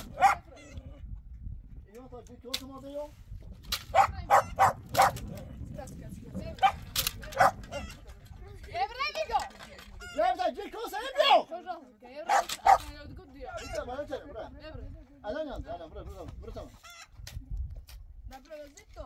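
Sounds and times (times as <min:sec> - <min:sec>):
dog barking: 0:00.0 - 0:00.5, 0:03.9 - 0:05.2, 0:06.6 - 0:07.8, 0:12.3 - 0:12.9.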